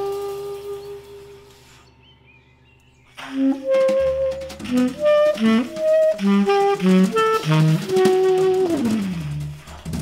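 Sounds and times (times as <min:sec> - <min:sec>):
saxophone long note: 0:00.0 - 0:01.6.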